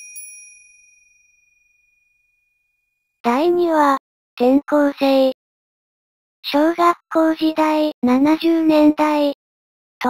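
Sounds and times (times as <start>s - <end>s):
bell-like ding: 0.0s - 3.0s.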